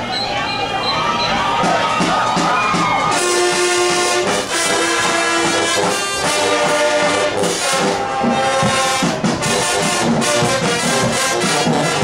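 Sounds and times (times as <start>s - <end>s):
marching band brass playing: 1.4s - 12.0s.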